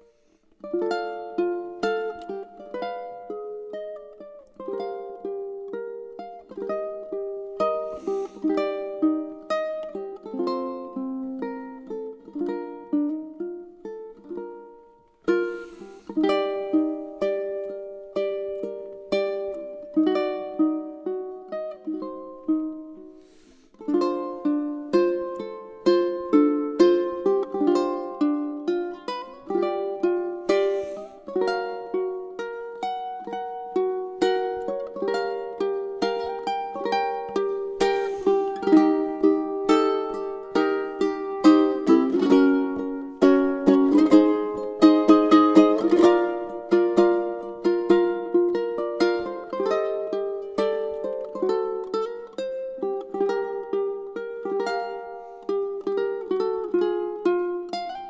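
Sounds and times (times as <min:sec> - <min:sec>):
fingerstyle ukulele melody: 0:00.0 - 0:58.0.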